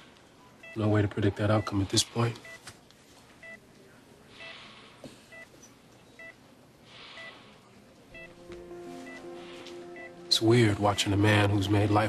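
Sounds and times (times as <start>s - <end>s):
heart monitor beeping: 0.6s - 2.6s, 3.4s - 3.6s, 5.3s - 6.4s, 7.2s - 7.4s, 8.2s - 10.2s.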